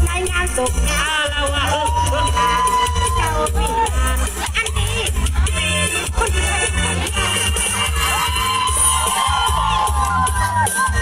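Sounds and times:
crowd shouting and cheering: 0:00.0 - 0:11.0
loud music with bass beat: 0:00.0 - 0:11.0.

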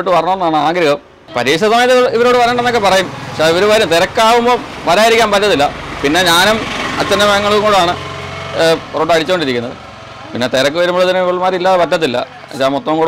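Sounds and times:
person talking: 0:01.3 - 0:08.0.

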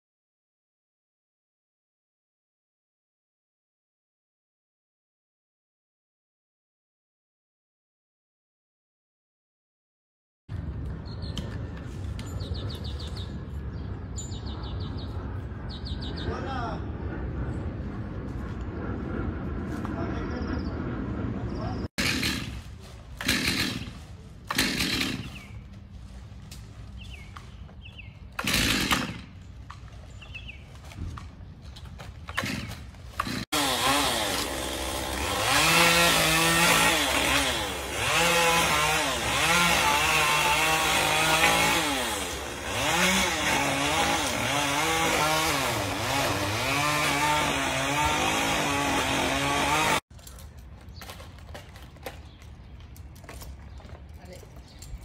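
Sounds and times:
chainsaw revving while cutting: 0:22.0 - 0:22.6, 0:23.2 - 0:23.9, 0:24.5 - 0:25.5, 0:28.4 - 0:29.3, 0:32.4 - 0:50.0.

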